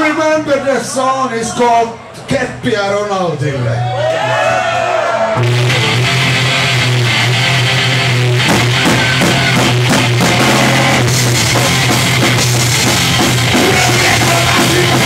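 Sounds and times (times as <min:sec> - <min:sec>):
drums: 0:05.3 - 0:15.0
distorted guitar and bass chord: 0:05.4 - 0:15.0
punk band playing loud: 0:05.4 - 0:15.0.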